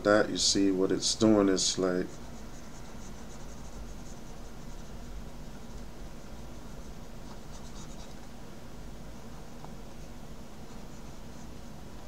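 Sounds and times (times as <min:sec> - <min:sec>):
steady low hum: 0:00.0 - 0:12.0
pen scratching on tablet: 0:01.8 - 0:08.3, 0:09.2 - 0:12.0.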